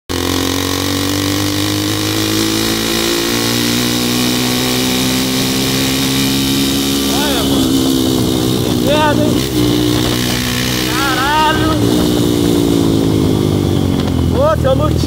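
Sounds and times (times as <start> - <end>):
motorcycle engine running: 0.1 - 15.0
wind rush on microphone: 7.3 - 14.4.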